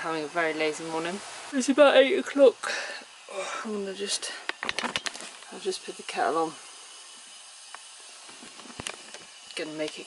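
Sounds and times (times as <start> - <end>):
stove hissing: 0.0 - 10.0
kettle and stove clicks: 4.4 - 5.6, 7.7 - 10.0.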